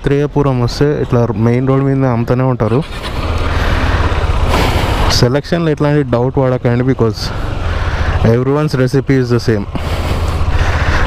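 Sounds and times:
man speaking: 0:00.0 - 0:02.9, 0:05.1 - 0:07.4, 0:08.2 - 0:09.8
motorcycle engine rumbling: 0:00.0 - 0:11.0.

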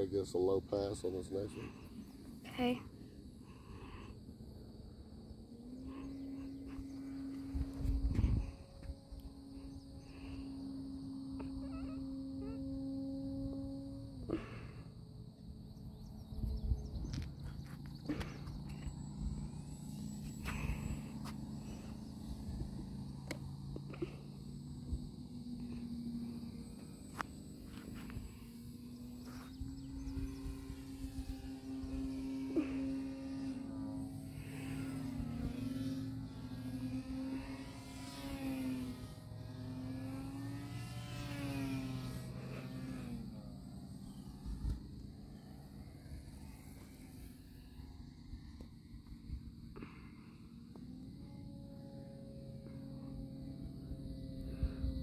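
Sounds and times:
crickets chirping: 0:00.0 - 0:55.0
model glider motor buzzing: 0:00.0 - 0:55.0.

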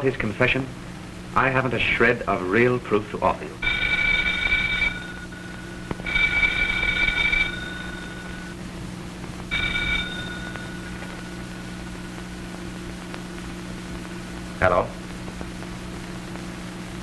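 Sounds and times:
steady low hum: 0:00.0 - 0:17.0
telephone bell ringing: 0:03.6 - 0:08.6, 0:09.5 - 0:12.5.

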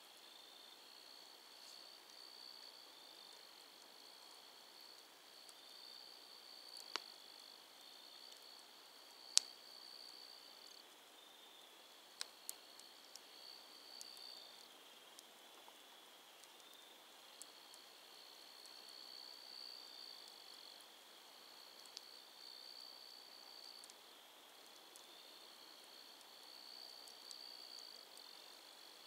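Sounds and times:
campfire embers crackling: 0:00.0 - 0:29.0
crickets trilling: 0:00.2 - 0:15.0.

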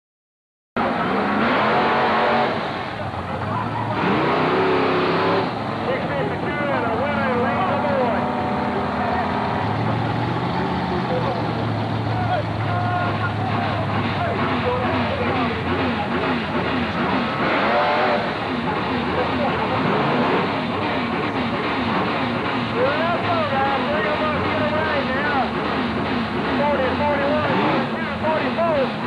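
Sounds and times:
race car engines revving: 0:00.8 - 0:29.0.

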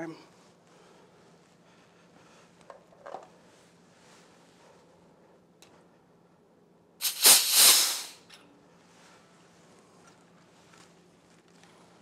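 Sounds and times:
compressed gas hissing out: 0:07.0 - 0:08.3.

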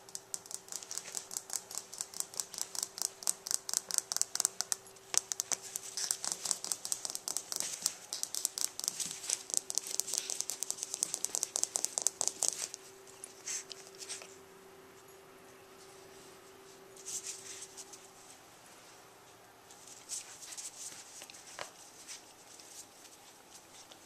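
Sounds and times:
puppy clicks and scratches: 0:00.0 - 0:14.4, 0:19.8 - 0:24.0.

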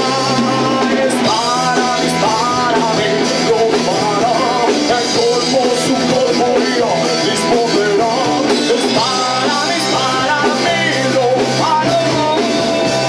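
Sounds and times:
rock band playing live: 0:00.0 - 0:13.0
wavering melodic lead line: 0:00.0 - 0:13.0.

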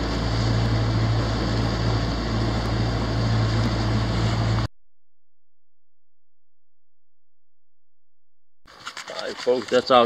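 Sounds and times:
boat motor humming: 0:00.0 - 0:04.7.

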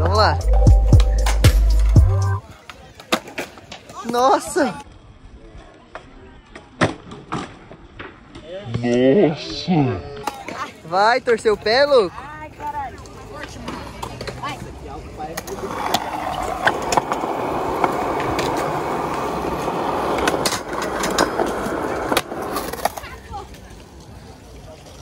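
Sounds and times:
skateboard wheels rolling on pavement: 0:00.1 - 0:25.0
skateboard clacking on ground: 0:02.5 - 0:04.4, 0:10.1 - 0:11.6, 0:12.5 - 0:25.0.

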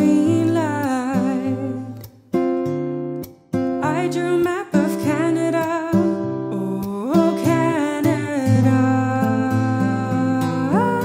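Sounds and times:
woman singing with vibrato: 0:00.0 - 0:02.0, 0:03.8 - 0:11.0
plucked acoustic guitar: 0:00.0 - 0:11.0.

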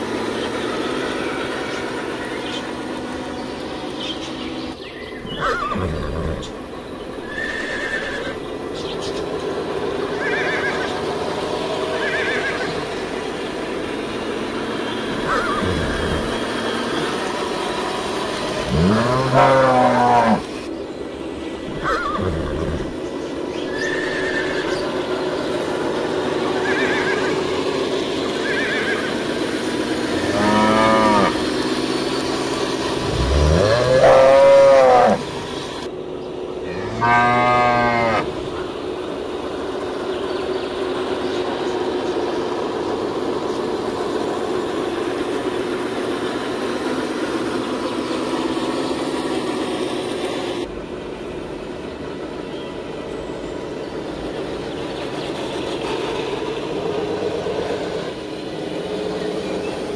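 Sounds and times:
background drone: 0:00.0 - 0:59.9
cattle mooing: 0:05.4 - 0:06.6, 0:15.1 - 0:17.2, 0:18.6 - 0:20.6, 0:21.7 - 0:23.0, 0:23.7 - 0:24.8, 0:30.1 - 0:31.5, 0:33.0 - 0:35.3, 0:36.6 - 0:38.4.

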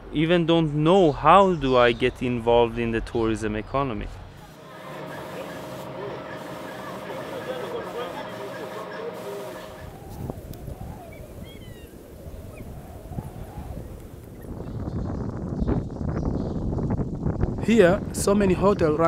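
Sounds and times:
machine hum: 0:04.3 - 0:14.3
background voices: 0:04.4 - 0:11.4
wind noise: 0:09.8 - 0:19.0.

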